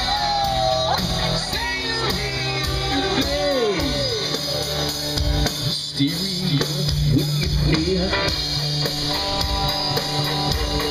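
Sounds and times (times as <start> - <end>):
person singing: 0.0 - 4.6
drum kit beat: 0.0 - 10.9
electric guitars: 0.0 - 10.9.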